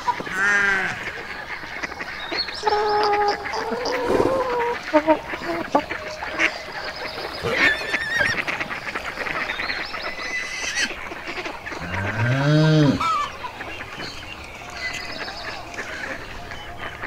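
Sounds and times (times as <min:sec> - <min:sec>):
long low rising animal call: 0:02.6 - 0:06.1, 0:11.8 - 0:13.3.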